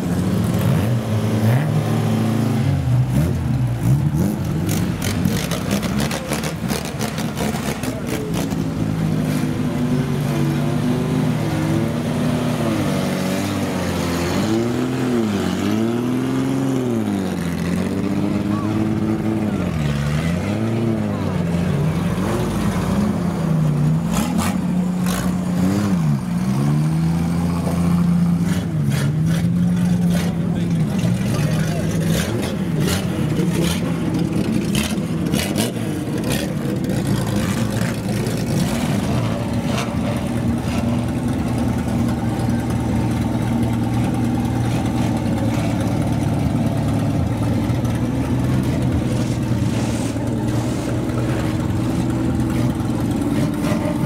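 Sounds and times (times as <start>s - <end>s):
car engines revving: 0.0s - 54.0s.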